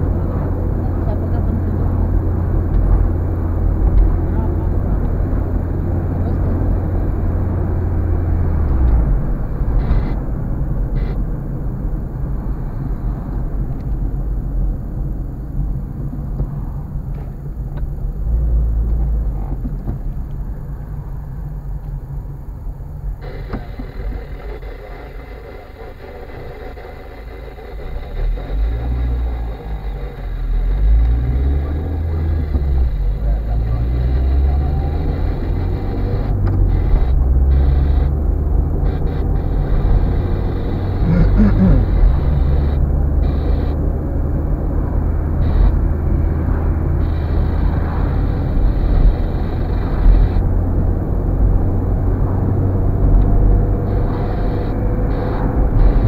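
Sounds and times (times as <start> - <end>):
car engine rumble: 0.0 - 56.0
road noise inside car: 0.0 - 56.0.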